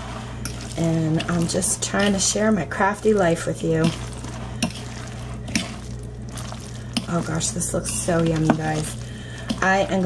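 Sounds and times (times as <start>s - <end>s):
wet squelching of pasta salad: 0.0s - 10.0s.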